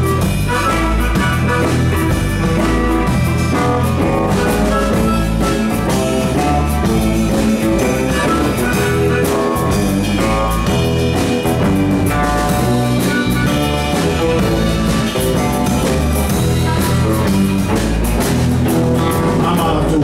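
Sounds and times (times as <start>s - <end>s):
harmonica: 0.0s - 18.2s
bass guitar: 0.0s - 20.0s
drum kit: 0.0s - 20.0s
guitars: 0.0s - 20.0s
keyboard: 0.0s - 20.0s.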